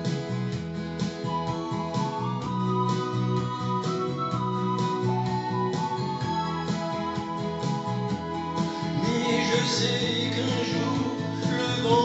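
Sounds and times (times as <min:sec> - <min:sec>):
instrumental backing music: 0:00.0 - 0:12.0.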